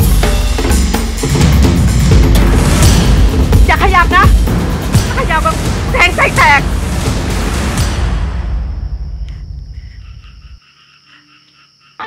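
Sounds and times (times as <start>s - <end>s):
crickets chirping: 0.0s - 12.0s
high insect whine: 0.0s - 12.0s
low rumble: 1.6s - 10.5s.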